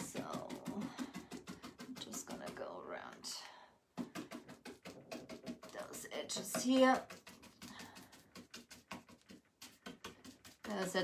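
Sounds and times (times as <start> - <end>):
paintbrush dabbing paint on wood: 0.0 - 11.0.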